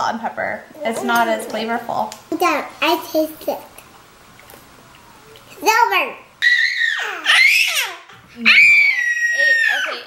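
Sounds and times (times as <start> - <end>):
baby squealing screams: 6.4 - 10.0.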